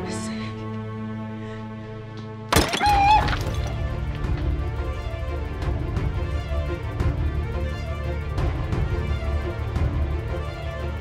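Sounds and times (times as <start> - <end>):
tense background score: 3.2 - 11.0.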